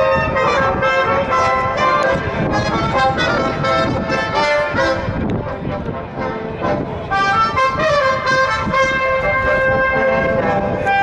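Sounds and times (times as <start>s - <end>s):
brass instruments playing: 0.0s - 11.0s
crowd noise: 0.0s - 11.0s.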